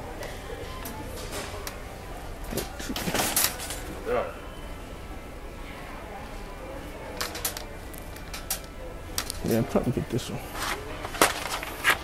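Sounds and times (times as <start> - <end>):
shopping carts clicking and rattling: 2.4 - 4.0, 7.1 - 9.8, 10.5 - 12.0.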